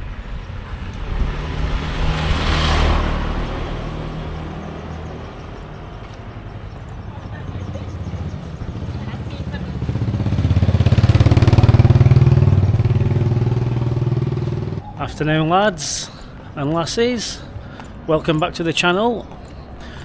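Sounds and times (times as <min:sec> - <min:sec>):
motor scooter passing: 0:00.0 - 0:15.4
another vehicle: 0:00.0 - 0:18.3.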